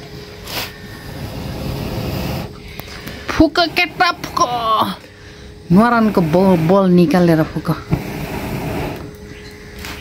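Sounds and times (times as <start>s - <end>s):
person blowing on charcoal: 0.0s - 7.2s, 7.8s - 9.4s.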